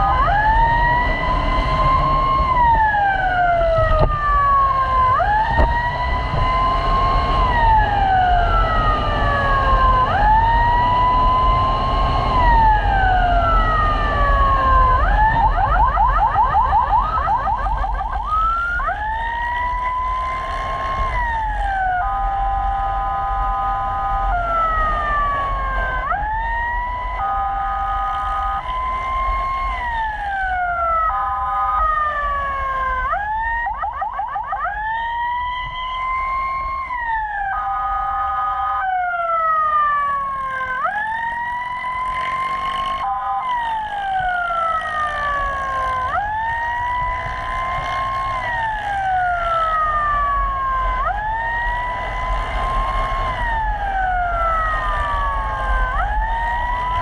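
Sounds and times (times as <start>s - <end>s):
motorcycle rumble: 0.0s - 33.1s, 39.4s - 57.0s
electronic emergency siren: 0.0s - 57.0s
wind: 0.0s - 57.0s.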